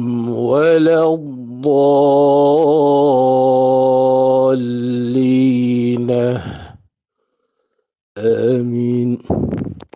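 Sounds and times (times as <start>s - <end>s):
man chanting recitation: 0.0s - 6.8s, 8.2s - 9.9s.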